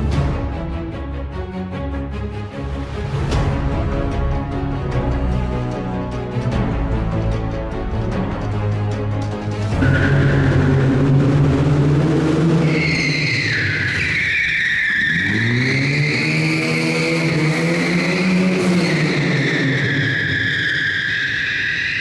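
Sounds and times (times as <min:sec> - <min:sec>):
tyre squeal on concrete: 0:09.7 - 0:11.0, 0:12.6 - 0:22.0
car engine revving hard: 0:15.0 - 0:20.1.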